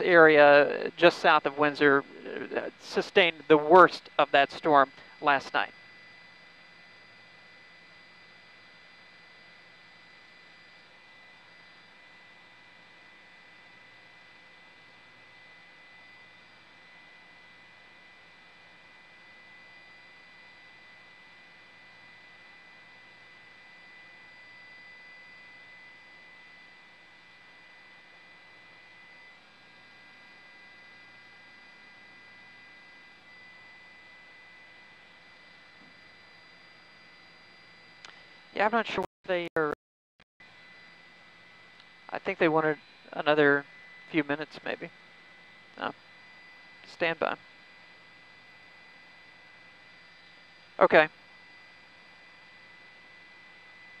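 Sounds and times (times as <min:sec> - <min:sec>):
line hiss and hum: 0:00.0 - 0:08.4.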